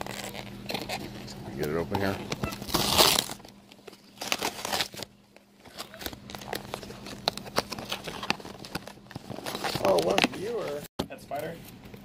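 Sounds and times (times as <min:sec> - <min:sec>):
packaging rustling and crinkling: 0:00.0 - 0:10.9
cardboard scraping: 0:05.6 - 0:10.8.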